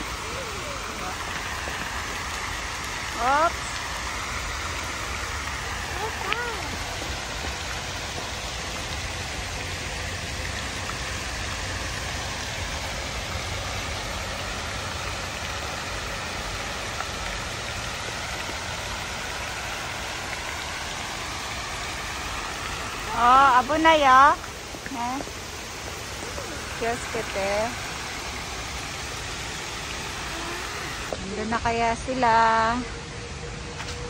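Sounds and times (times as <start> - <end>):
fountain water splashing: 0.0 - 34.0.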